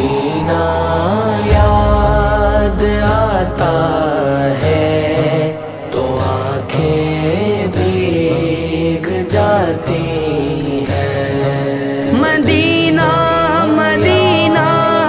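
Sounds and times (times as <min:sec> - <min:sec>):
layered voices chanting: 0:00.0 - 0:12.2
sustained low drone: 0:00.8 - 0:05.2.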